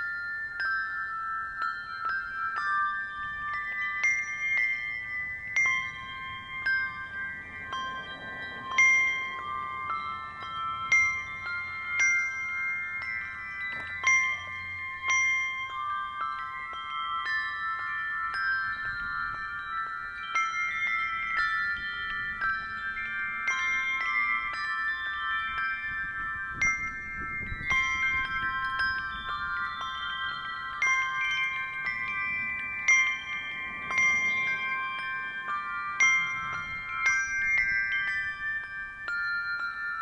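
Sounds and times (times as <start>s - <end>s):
brass handbells ringing: 0.0s - 40.0s.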